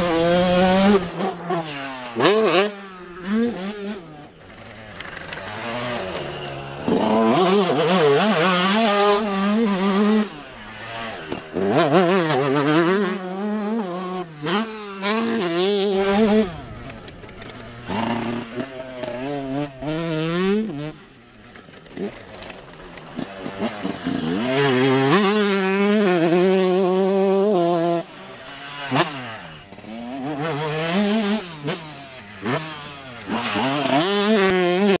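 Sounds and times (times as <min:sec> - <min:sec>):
dirt bike engine revving: 0:00.0 - 0:35.0.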